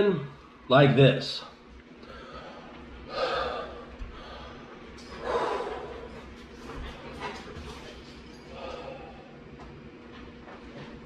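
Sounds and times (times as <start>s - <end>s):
man breathing deeply: 2.0s - 6.4s, 8.4s - 9.5s.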